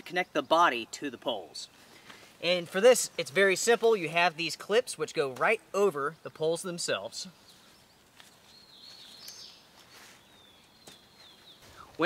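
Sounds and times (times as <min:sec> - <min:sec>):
quiet outdoor ambience: 0:00.0 - 0:12.0.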